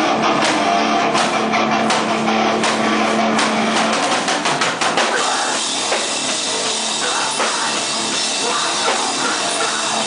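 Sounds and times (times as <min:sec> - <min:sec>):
punk band playing live: 0:00.0 - 0:10.0.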